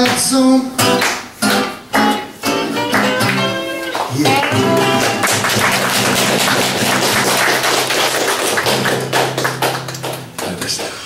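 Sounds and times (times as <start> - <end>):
acoustic guitars strumming: 0.0 - 11.0.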